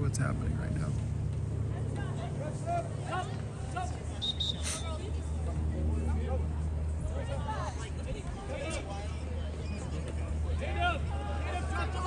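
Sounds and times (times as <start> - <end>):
distant voices calling out: 1.0 - 12.0.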